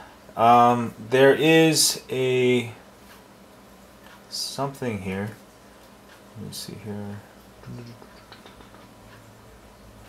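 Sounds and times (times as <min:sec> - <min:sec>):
low room hum: 0:00.0 - 0:10.0
fingertip tapping touchscreen: 0:08.0 - 0:09.2.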